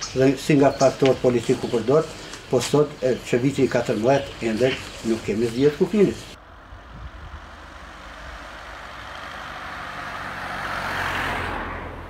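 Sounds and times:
car driving past: 6.4s - 12.0s.

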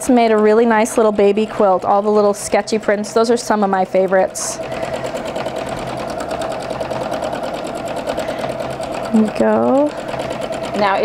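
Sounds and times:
sewing machine running: 0.0s - 11.0s.

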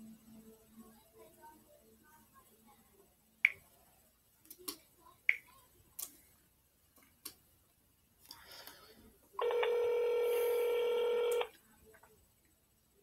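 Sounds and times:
telephone ringback tone: 9.4s - 11.5s.

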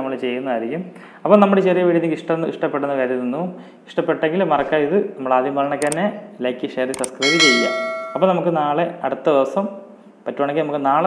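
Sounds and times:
bright bell chime: 7.2s - 8.5s.

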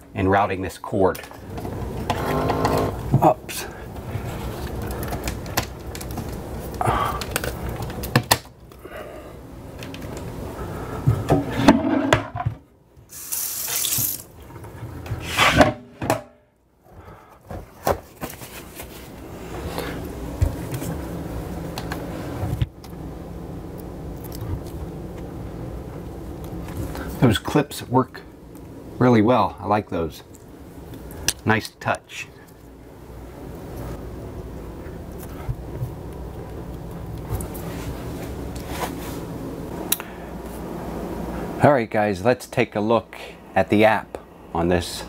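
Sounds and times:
brief hiss: 13.1s - 14.2s.

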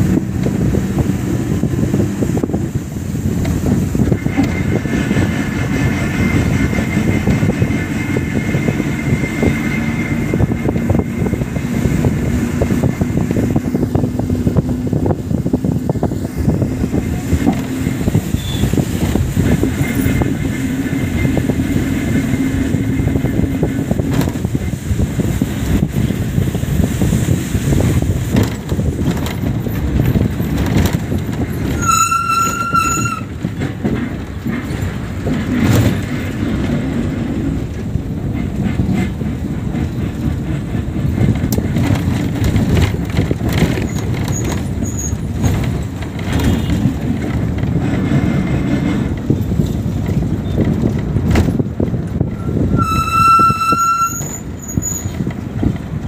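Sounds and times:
bus body rattle: 0.0s - 56.0s
bus engine drone: 0.0s - 56.0s
road and wind noise: 0.0s - 56.0s
vehicle horn: 31.8s - 33.3s, 46.4s - 46.9s, 52.4s - 54.4s.

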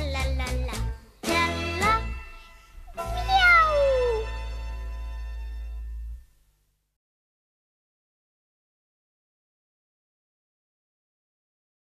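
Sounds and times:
cat meowing: 3.1s - 4.3s.

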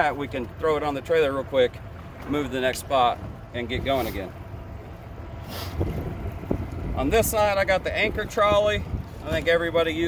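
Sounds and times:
wind rumbling on microphone: 3.0s - 10.0s.

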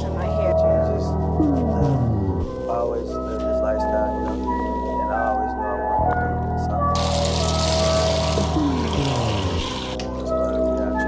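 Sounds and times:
water pouring into a bathtub: 7.0s - 10.7s.

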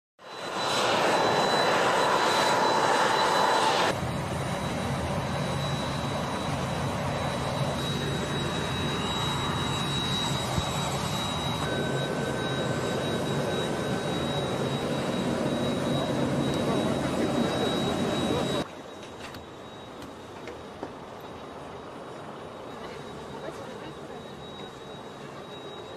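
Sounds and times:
jet engines rushing: 0.2s - 25.9s
thin high engine whine: 0.2s - 25.9s.

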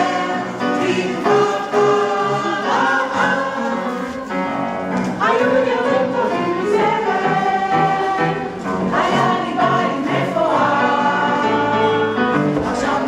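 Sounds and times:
instrumental accompaniment: 0.0s - 13.0s.

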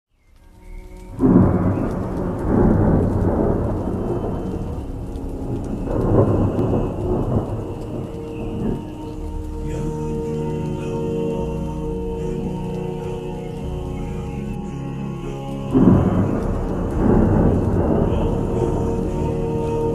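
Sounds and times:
steady rain: 0.1s - 19.9s
rolling thunder: 1.0s - 19.9s.

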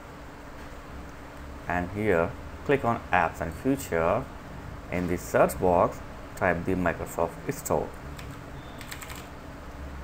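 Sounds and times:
low steady hum: 0.0s - 10.0s
computer keyboard keystrokes: 8.2s - 9.3s.

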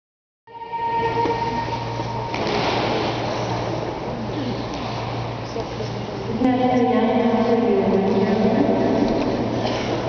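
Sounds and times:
background noise: 0.5s - 10.0s
steady multi-pitched hum: 0.5s - 10.0s.

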